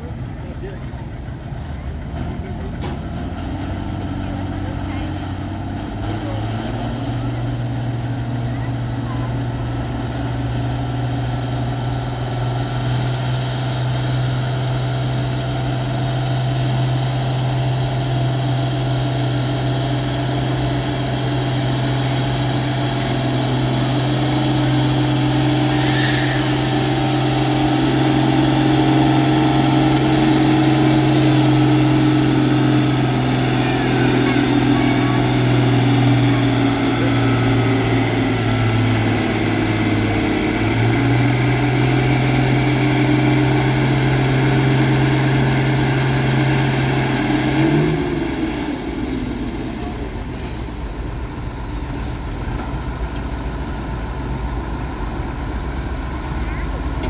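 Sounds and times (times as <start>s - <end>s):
tractor engine droning: 0.0s - 57.0s.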